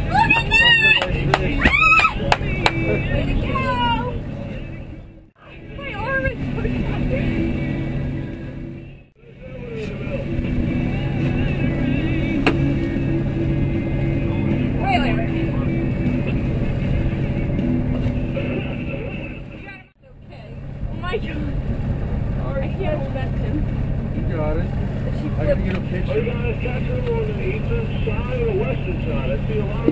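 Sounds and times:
outboard motors droning: 0.0s - 29.9s.

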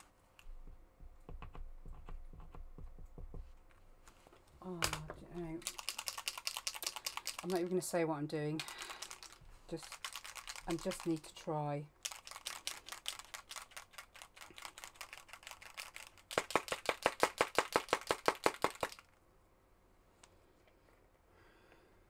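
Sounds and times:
rapid sharp clicking: 5.6s - 7.7s, 8.6s - 11.3s, 12.0s - 19.0s.

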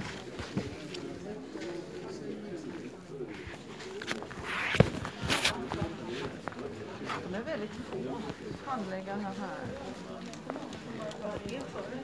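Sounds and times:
people talking indistinctly: 0.0s - 12.0s.

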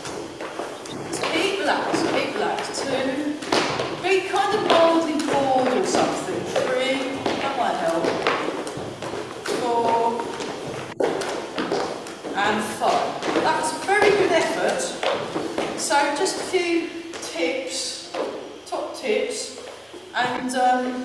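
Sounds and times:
person talking: 0.9s - 3.4s, 4.0s - 8.2s, 9.5s - 10.4s, 12.3s - 15.0s, 15.8s - 18.1s, 20.2s - 21.0s.

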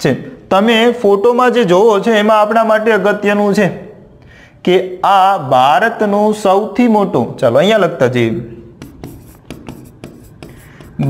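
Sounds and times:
pen scratching on a board: 8.7s - 11.0s.

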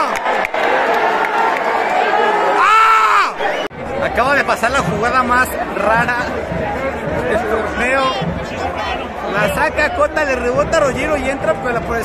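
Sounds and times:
stadium crowd roaring and cheering: 0.0s - 12.0s.

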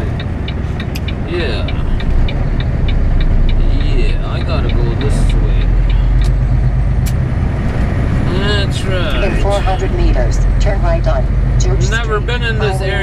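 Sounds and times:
diesel truck engine rumble: 0.0s - 13.0s.

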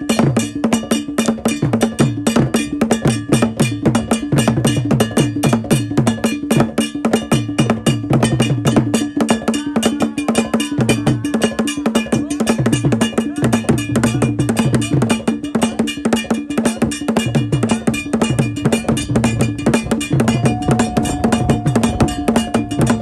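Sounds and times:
bell struck in fast pattern: 0.0s - 23.0s
low drum strokes: 17.3s - 23.0s
held note: 17.6s - 23.0s.

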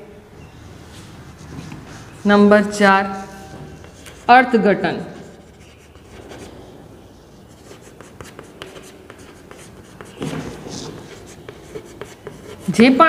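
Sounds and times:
chalk scratching on blackboard: 0.9s - 13.0s.

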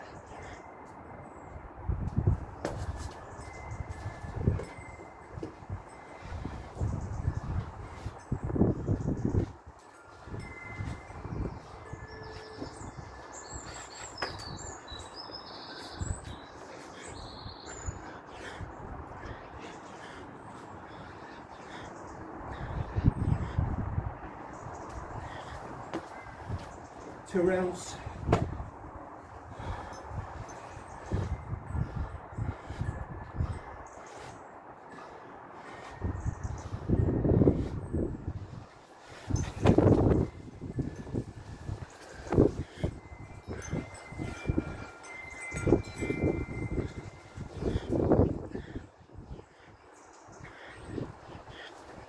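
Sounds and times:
faint ringing tones: 3.2s - 8.4s, 9.8s - 16.7s
man breathing hard: 3.8s - 27.2s, 27.8s - 52.0s
scuffs and knocks of body: 28.3s - 28.6s.

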